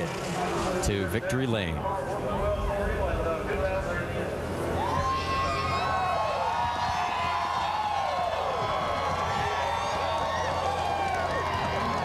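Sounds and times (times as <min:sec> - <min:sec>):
crowd cheering and shouting: 0:04.7 - 0:12.0.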